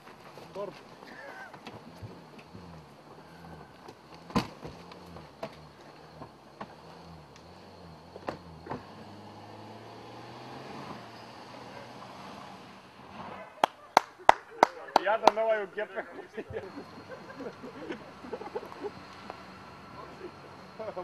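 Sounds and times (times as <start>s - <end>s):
engine pulling away: 0.0s - 13.8s, 15.1s - 21.0s.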